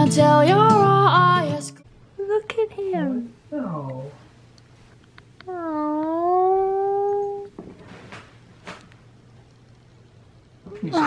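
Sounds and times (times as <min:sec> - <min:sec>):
small dog howling: 0:05.5 - 0:07.5.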